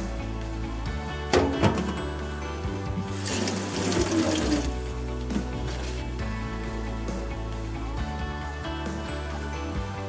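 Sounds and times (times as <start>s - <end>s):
background music: 0.0s - 10.0s
water pouring: 2.8s - 6.1s.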